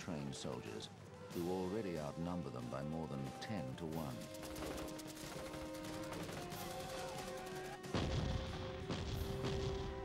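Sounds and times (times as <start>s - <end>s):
dramatic music with held tones: 0.0s - 10.0s
rapid gunfire: 4.2s - 9.8s.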